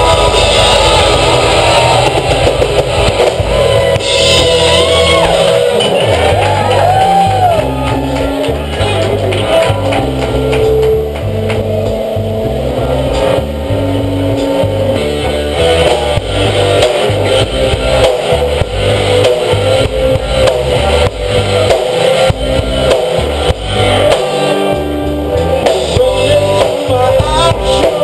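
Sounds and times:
bass guitar: 0.0s - 28.0s
drum kit: 0.0s - 28.0s
electric guitars: 0.0s - 28.0s.

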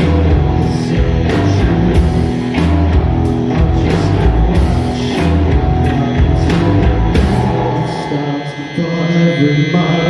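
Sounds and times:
drum beat: 0.0s - 8.0s
live rock band: 0.0s - 10.0s
sustained electric guitar and bass: 0.0s - 10.0s.

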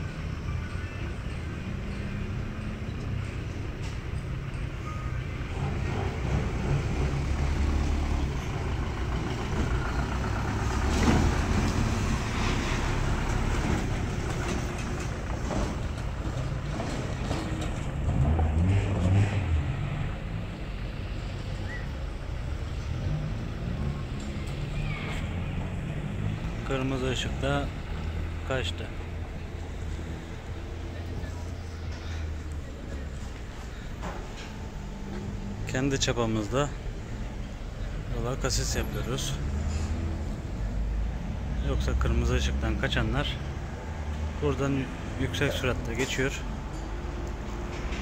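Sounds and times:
pickup truck engine driving: 0.0s - 48.0s
vehicles passing on dirt road: 0.0s - 48.0s.

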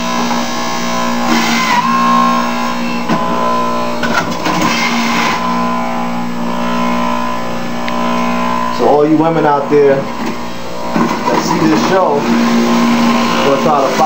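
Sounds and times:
electric juicer motor humming: 0.0s - 14.0s.

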